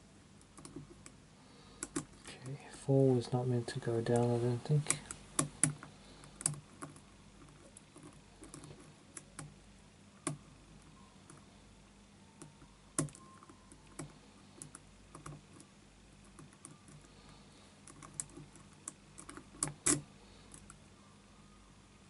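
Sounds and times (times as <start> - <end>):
lock pick clicking and scraping: 17.9 - 20.7.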